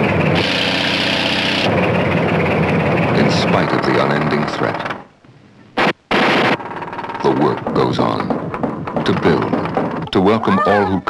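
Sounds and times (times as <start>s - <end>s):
crawler tractor engine running: 0.0s - 10.5s
hissing: 0.0s - 10.8s.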